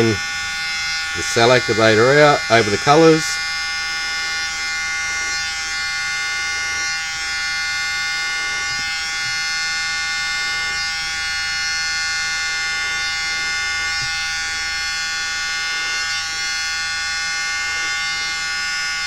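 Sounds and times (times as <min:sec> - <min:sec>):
small electric blower whining: 0:00.0 - 0:19.0.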